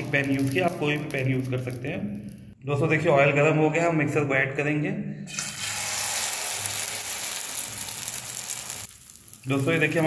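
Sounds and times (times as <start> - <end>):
egg sizzling in hot oil: 5.4 - 10.0.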